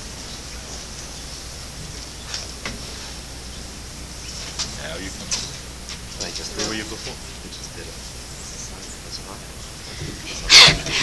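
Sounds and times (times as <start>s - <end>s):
low hum: 0.0s - 11.0s
recording hiss: 0.0s - 11.0s.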